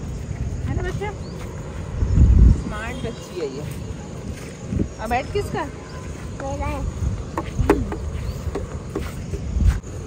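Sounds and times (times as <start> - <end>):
footsteps on dry grass: 0.0 - 10.0
wind rumble on microphone: 0.0 - 10.0.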